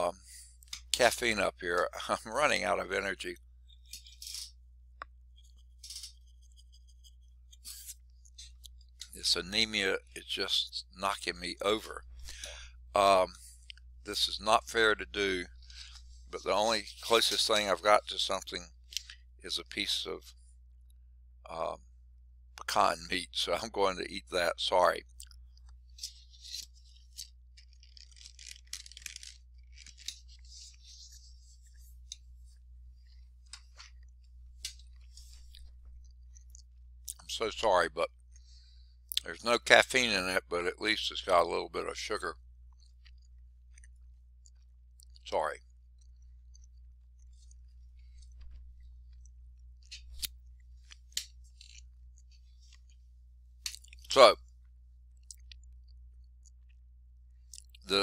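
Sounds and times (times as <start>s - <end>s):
person chewing nut: 27.0s - 30.1s, 33.1s - 37.3s, 42.7s - 48.5s, 53.7s - 54.1s, 55.2s - 57.9s
man chewing crunchy nut: 42.7s - 53.0s, 53.7s - 54.1s, 55.2s - 56.7s, 57.4s - 57.9s.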